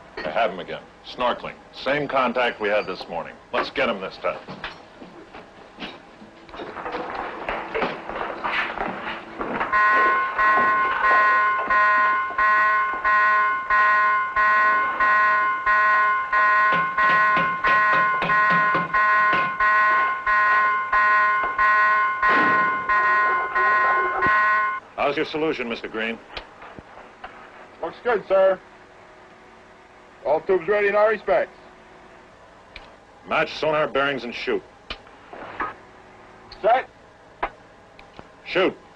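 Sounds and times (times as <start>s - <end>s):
alarm bong repeating: 9.6s - 24.8s.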